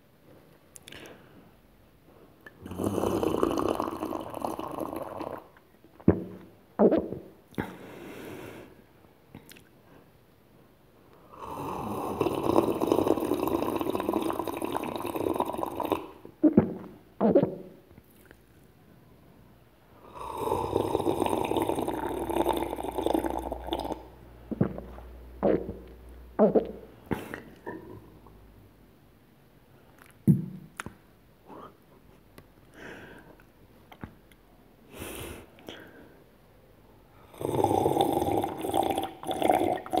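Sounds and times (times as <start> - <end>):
person gulping liquid: 2.4 - 7.8, 11.5 - 18.5, 20.1 - 28.4, 37.4 - 40.0.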